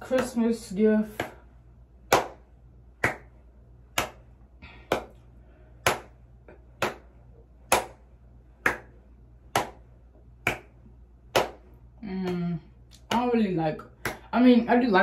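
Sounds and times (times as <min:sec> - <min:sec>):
hands snapping a steady beat: 0:00.0 - 0:14.4.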